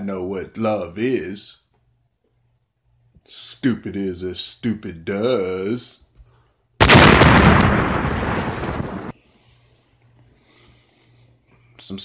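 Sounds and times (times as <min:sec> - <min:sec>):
loud explosion blast: 0:06.8 - 0:09.1.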